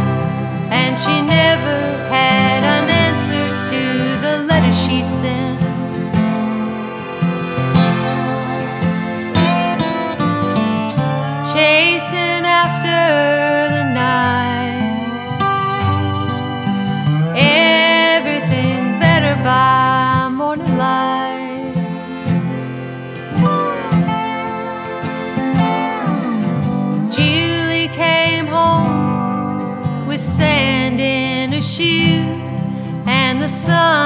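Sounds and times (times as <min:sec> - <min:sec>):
lap slide guitar melody: 0:00.0 - 0:34.0
strummed acoustic guitar: 0:00.0 - 0:34.0
sustained accordion chords: 0:00.0 - 0:34.0.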